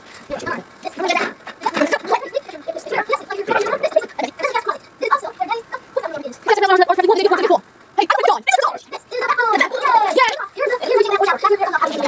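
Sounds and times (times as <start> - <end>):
drawn-out vocal sound: 0.0 - 12.0
voices from television speakers: 0.3 - 12.0.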